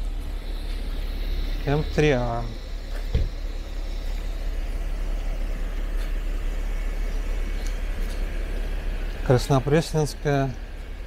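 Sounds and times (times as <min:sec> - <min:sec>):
street traffic: 0:00.0 - 0:11.0
vehicle engine running: 0:00.0 - 0:11.0.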